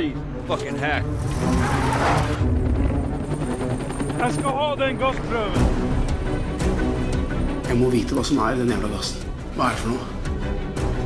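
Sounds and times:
dramatic trailer music: 0.0s - 11.0s.

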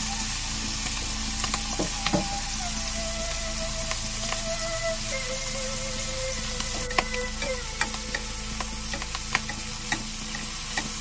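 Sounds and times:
meat sizzling in a frying pan: 0.0s - 11.0s
tongs clicking against pan: 7.8s - 11.0s.

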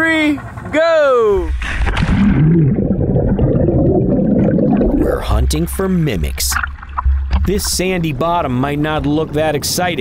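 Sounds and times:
muffled underwater bubbles rushing: 1.4s - 9.7s.

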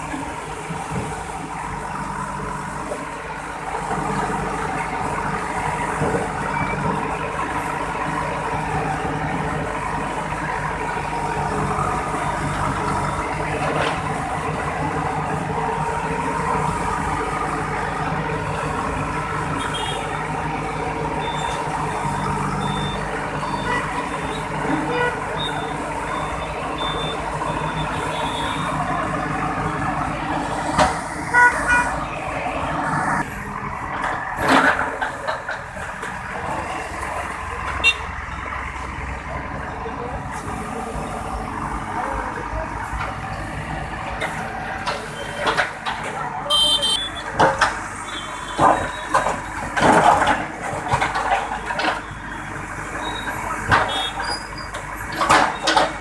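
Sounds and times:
diesel engine under load: 0.0s - 56.0s.

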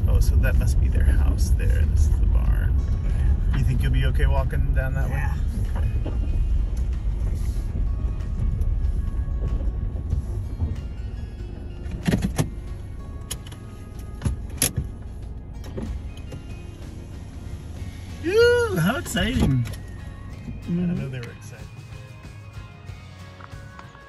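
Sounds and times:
car rumble: 0.0s - 24.0s
sharp clicks and knocks: 11.8s - 12.6s.

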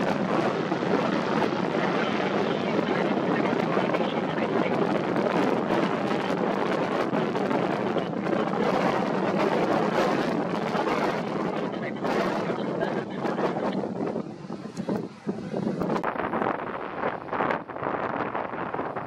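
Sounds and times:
gusty wind buffeting microphone: 0.0s - 19.0s.

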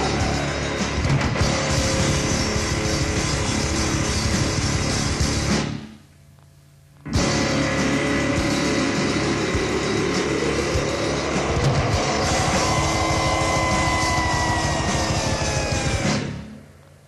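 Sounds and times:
death metal music: 0.0s - 5.8s, 7.1s - 16.6s.

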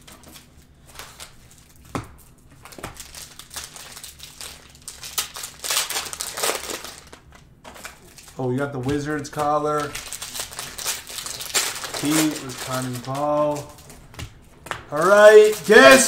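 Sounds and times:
cellophane wrappers crinkling: 0.0s - 16.0s.

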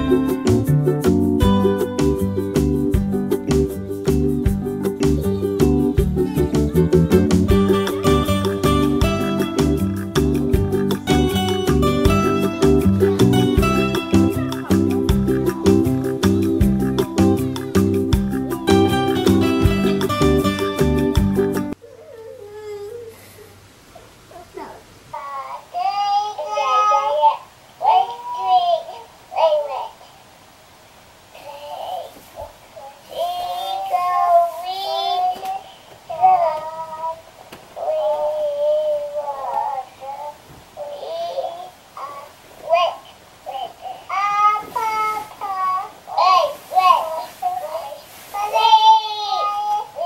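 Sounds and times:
young child singing: 24.3s - 30.1s, 31.4s - 50.0s.

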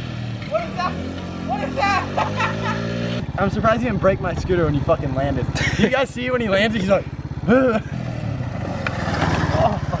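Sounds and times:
scooter engine running: 0.0s - 10.0s.

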